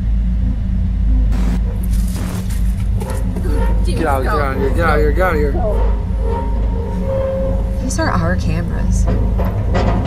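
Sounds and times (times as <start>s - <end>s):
car engine rumbling inside cabin: 0.0s - 10.0s
person speaking: 3.2s - 5.8s.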